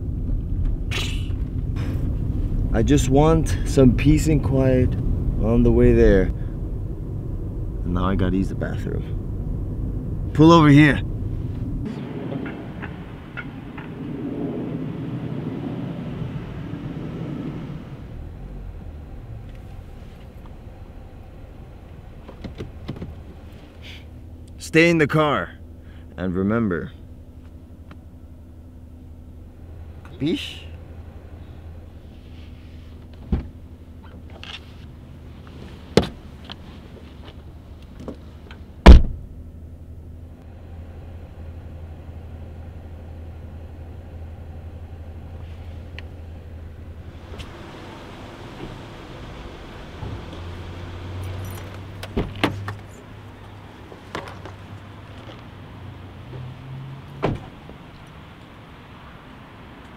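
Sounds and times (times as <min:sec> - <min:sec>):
car engine hum: 0:00.0 - 0:59.9
heavy thump: 0:38.8 - 0:39.2, 0:57.2 - 0:57.8.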